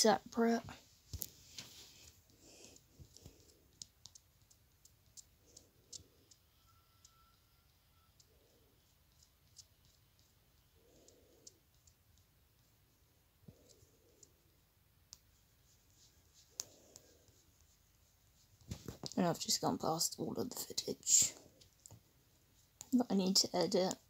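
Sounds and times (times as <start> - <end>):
computer mouse clicking: 2.7 - 7.4.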